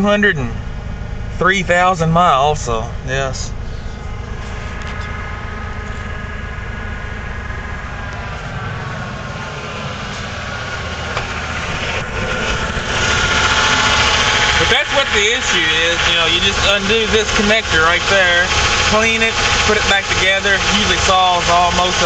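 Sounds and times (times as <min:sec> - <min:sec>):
engine idling: 0:00.0 - 0:22.0.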